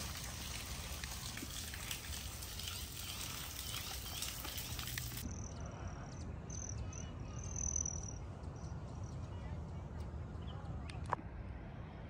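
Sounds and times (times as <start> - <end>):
waterfall trickling into pond: 0.0 - 5.2
high-pitched bird chirps: 6.5 - 8.3.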